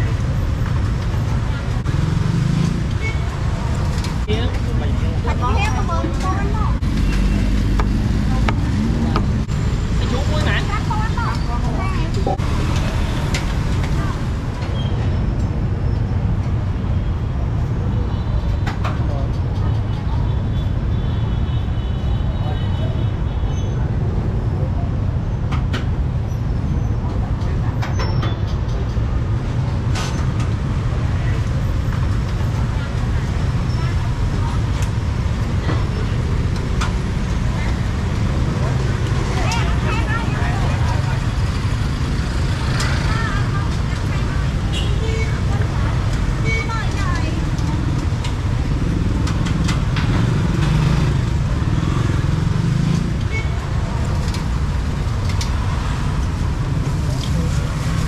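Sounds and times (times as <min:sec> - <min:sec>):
motorbikes passing: 0:00.0 - 0:20.5, 0:25.9 - 0:58.0
road traffic rumble: 0:00.0 - 0:58.0
people talking: 0:03.5 - 0:12.4, 0:13.9 - 0:14.8, 0:32.3 - 0:36.6, 0:37.3 - 0:41.6, 0:42.7 - 0:48.0.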